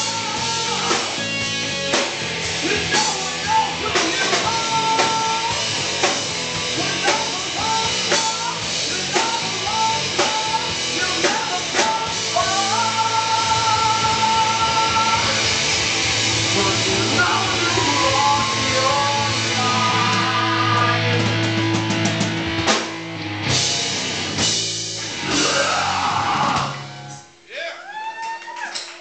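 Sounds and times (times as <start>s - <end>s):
rock band playing live: 0.0s - 27.4s.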